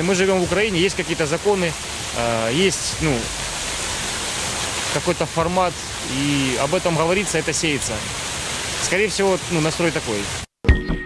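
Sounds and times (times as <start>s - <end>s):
fountain water splashing: 0.0s - 10.5s.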